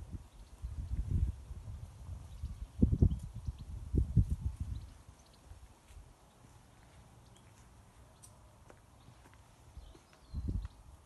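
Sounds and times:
faint light ticks: 8.2 - 9.4.

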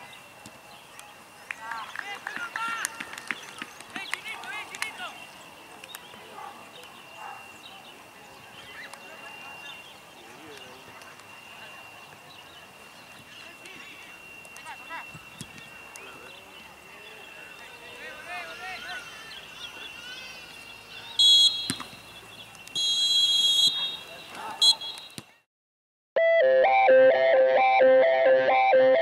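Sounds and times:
referee's whistle: 21.2 - 21.9, 22.8 - 25.3
upbeat guitar music: 26.2 - 29.0.

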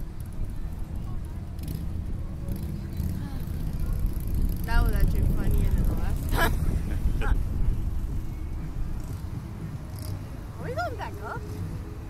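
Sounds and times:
wind buffeting microphone: 0.0 - 12.0
people laughing: 6.3 - 7.4.

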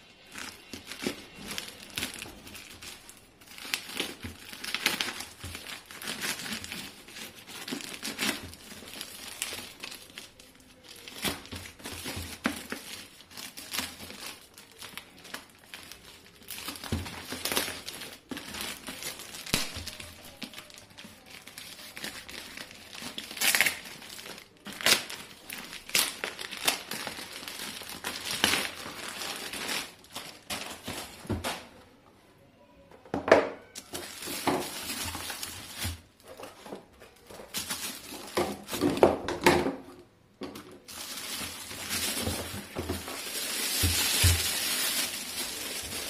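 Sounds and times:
plastic bag crinkling and tearing: 0.0 - 31.8, 33.7 - 39.4, 40.8 - 46.0.

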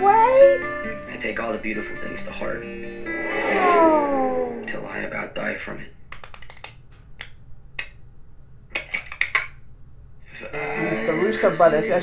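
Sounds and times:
sharp clicks: 6.1 - 8.0.

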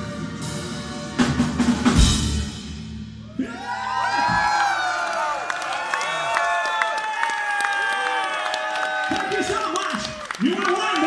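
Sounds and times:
metal band playing: 0.0 - 3.4
drums and cymbals crashing: 0.0 - 3.6
crowd cheering and whistling: 3.2 - 11.0.

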